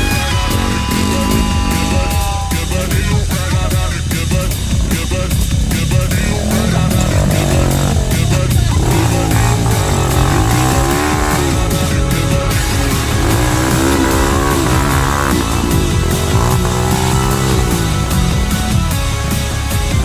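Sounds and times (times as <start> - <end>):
background music: 0.0 - 20.0
dirt bike engine revving: 0.0 - 20.0.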